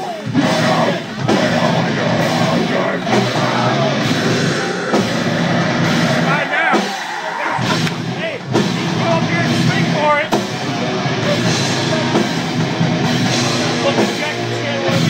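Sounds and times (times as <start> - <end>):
bass: 0.0 - 15.0
distorted guitars: 0.0 - 15.0
harsh vocals: 0.0 - 15.0
pounding drums: 0.0 - 15.0.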